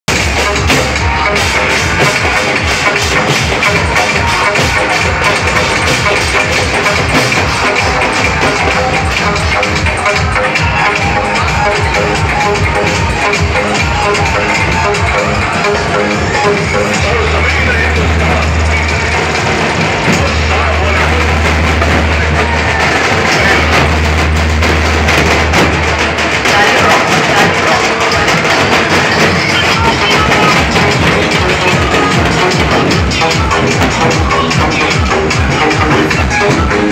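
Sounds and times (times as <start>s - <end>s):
heavy bass: 0.0s - 36.9s
loud music over sound system: 0.0s - 36.9s
barrel drums beaten with sticks: 0.1s - 17.3s, 17.9s - 36.9s.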